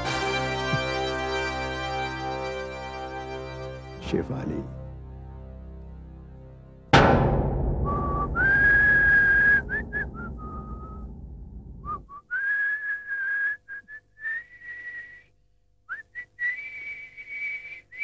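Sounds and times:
deep booming hit: 0:06.8 - 0:12.1
man whistling a tune: 0:07.8 - 0:11.1, 0:11.8 - 0:15.3, 0:15.9 - 0:18.0.

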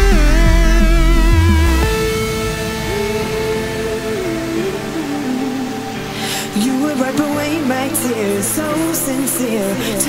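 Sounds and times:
slow synth melody: 0:00.0 - 0:09.8
held synth chords: 0:00.0 - 0:10.0.

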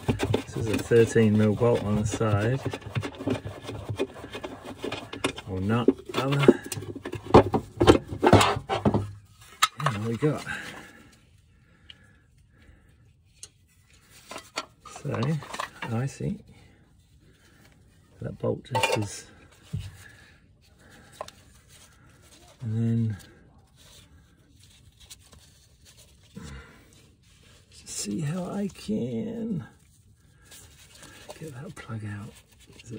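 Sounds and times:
faint clicks of handling parts: 0:00.0 - 0:28.9.

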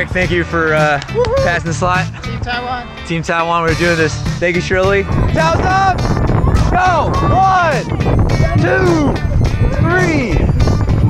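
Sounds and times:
steady low rumble: 0:03.8 - 0:11.0
person shouting commands: 0:06.6 - 0:07.9.

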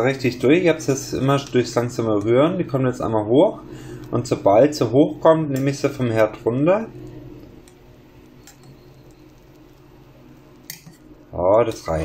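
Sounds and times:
low steady hum: 0:00.0 - 0:12.0
cheese sauce bubbling in a pot: 0:07.0 - 0:11.4
spoon stirring in a pot: 0:07.1 - 0:11.2.

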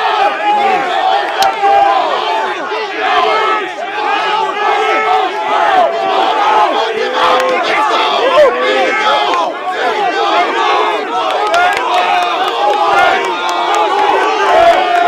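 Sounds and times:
crowd of players yelling: 0:00.0 - 0:15.0.

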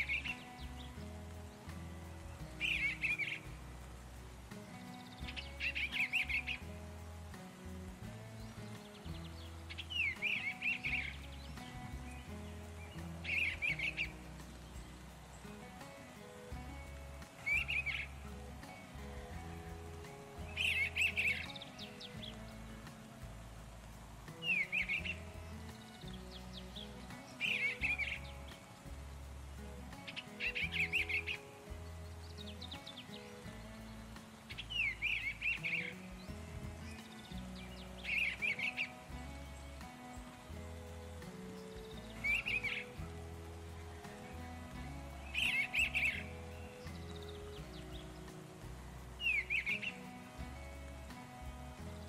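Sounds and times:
bird chirping: 0:00.0 - 0:52.0
soft held music notes: 0:00.0 - 0:52.0.

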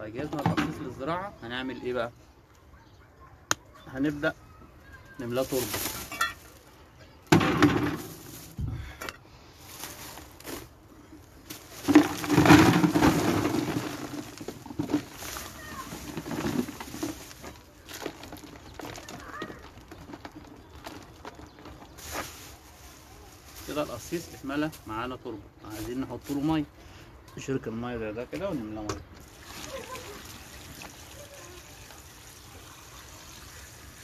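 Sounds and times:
plastic bag rustling: 0:05.0 - 0:08.9, 0:09.5 - 0:26.6, 0:29.2 - 0:32.0
soil tipped and crumbled by hand: 0:05.1 - 0:26.7, 0:29.2 - 0:34.0.

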